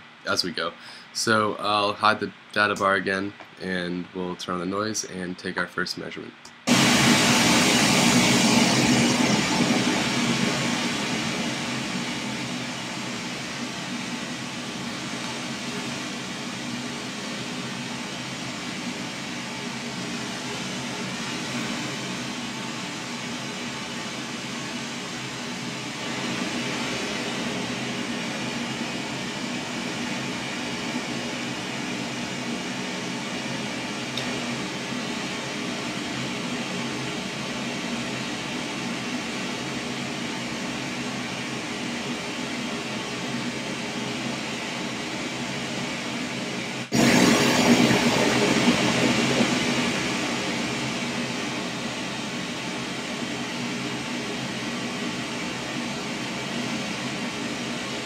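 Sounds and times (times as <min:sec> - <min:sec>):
pink noise hiss: 0:00.0 - 0:58.0.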